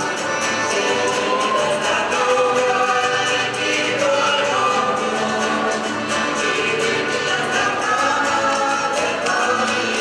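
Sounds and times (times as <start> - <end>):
accordion: 0.0 - 10.0
guitar: 0.0 - 10.0
voices singing together: 0.0 - 10.0.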